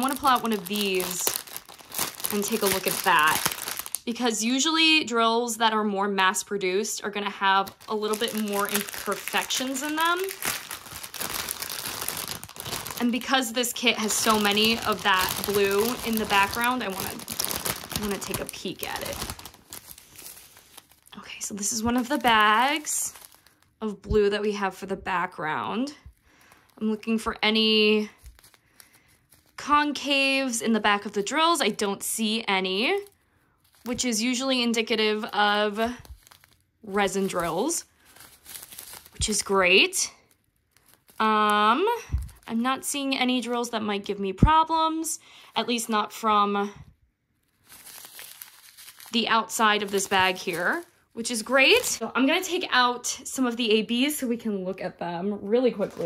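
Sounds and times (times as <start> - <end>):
plastic bags crinkling: 0.0 - 4.1, 7.0 - 23.8, 27.7 - 29.6, 32.8 - 42.9, 47.4 - 52.6, 55.4 - 56.0.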